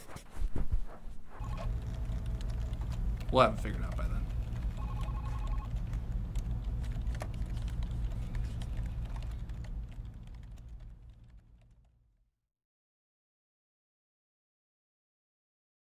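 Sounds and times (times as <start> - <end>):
steady low hum: 0.0 - 12.1.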